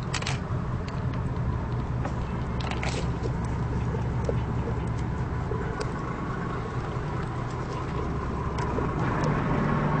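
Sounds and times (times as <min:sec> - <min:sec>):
boat engines idling: 0:00.0 - 0:10.0.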